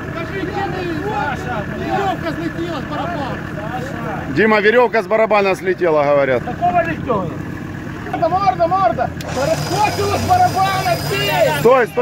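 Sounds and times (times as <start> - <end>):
vehicle engine running: 0.0 - 12.0
voices talking: 0.0 - 12.0.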